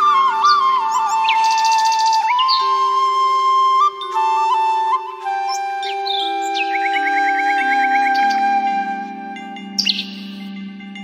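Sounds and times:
bird chirps and trill: 0.0 - 11.0.

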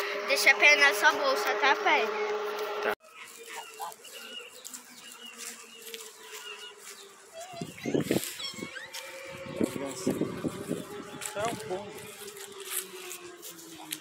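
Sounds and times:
geese calling: 0.0 - 14.0.

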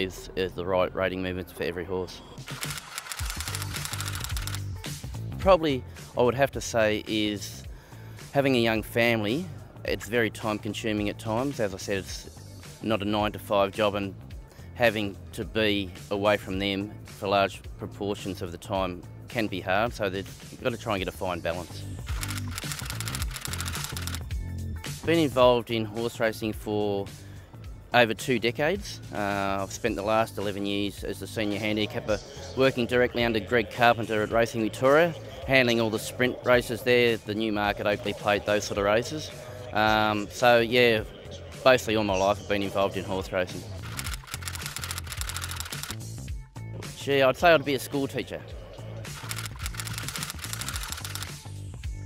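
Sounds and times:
background music: 0.0 - 52.0.

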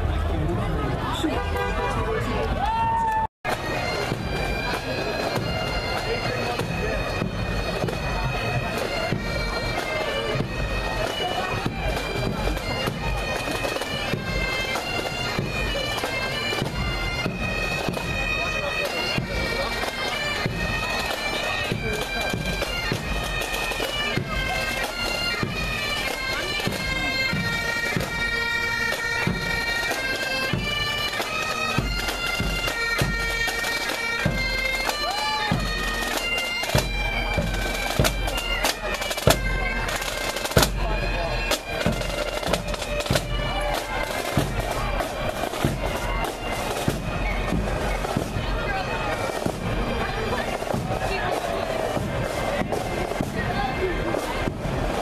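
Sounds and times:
snare and bass drums: 3.5 - 18.2, 30.5 - 55.0
bagpipes playing: 3.5 - 55.0.

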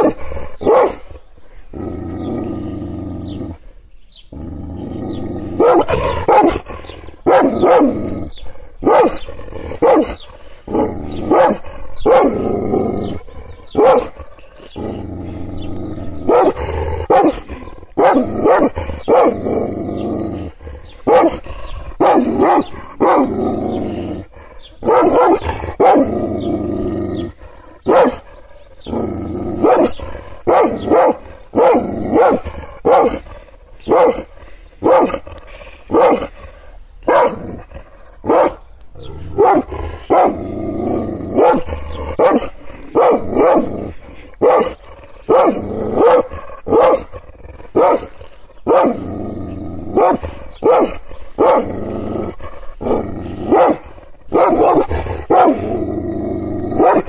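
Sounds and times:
dog barking: 0.0 - 1.1, 5.6 - 6.6, 7.2 - 7.9, 8.8 - 12.4, 13.7 - 14.2, 16.3 - 17.4, 18.0 - 19.4, 21.0 - 21.4, 22.0 - 23.3, 24.8 - 26.1, 27.8 - 28.3, 29.6 - 33.2, 33.9 - 35.2, 35.9 - 36.3, 37.1 - 37.4, 38.2 - 38.6, 39.4 - 40.4, 41.4 - 43.7, 44.4 - 47.1, 47.8 - 48.1, 48.7 - 49.0, 50.0 - 51.7, 52.8 - 55.7, 56.8 - 57.0
dog growling: 1.7 - 57.0.

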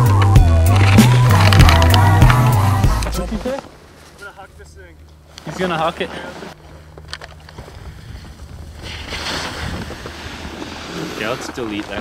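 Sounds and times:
wind rumbling on microphone: 7.4 - 12.0.

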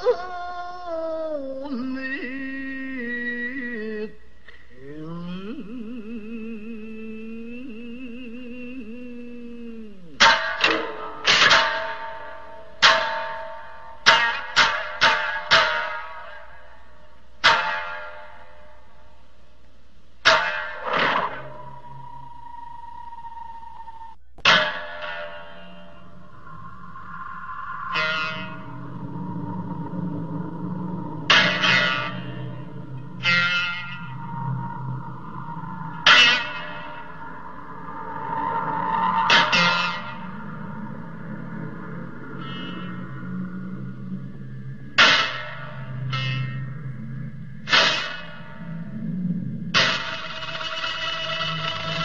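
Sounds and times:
low drone: 0.0 - 52.0
plucked lute strokes: 1.6 - 52.0
biwa plucked with plectrum: 20.2 - 37.8
held higher tone: 20.2 - 47.7.

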